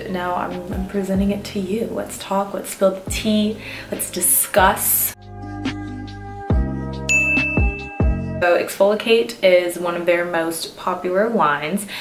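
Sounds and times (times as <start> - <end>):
deep drum beats: 0.4 - 1.6, 3.1 - 3.5, 5.6 - 8.4
bright bell-like ding: 7.1 - 8.0.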